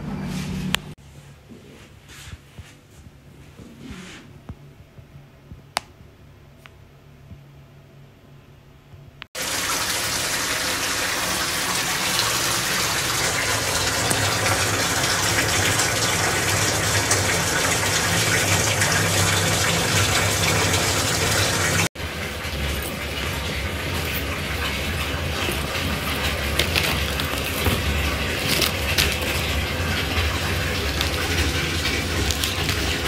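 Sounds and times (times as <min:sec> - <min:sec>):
tap water rushing into tub: 0:09.4 - 0:33.0.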